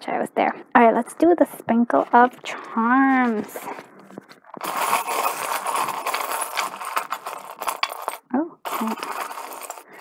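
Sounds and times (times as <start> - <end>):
small charms rattling and clinking: 4.6 - 10.0.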